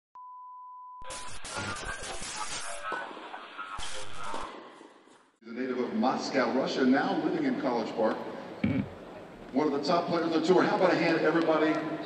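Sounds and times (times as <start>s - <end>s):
high pure beep: 0.2s - 1.2s
tv static hiss: 1.0s - 4.6s.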